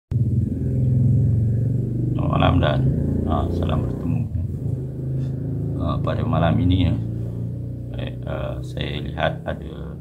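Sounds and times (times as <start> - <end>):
mechanical rumble with humming drone: 0.1 - 10.0.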